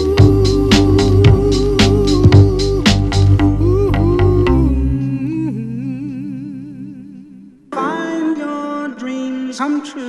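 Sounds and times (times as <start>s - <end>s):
bass and drums backing music: 0.0s - 5.1s
person singing long vibrato note: 0.0s - 9.0s.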